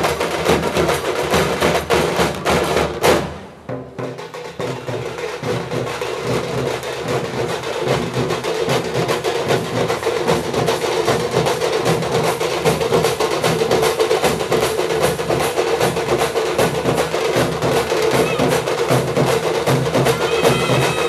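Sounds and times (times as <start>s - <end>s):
ensemble of folk drums: 0.0s - 21.0s.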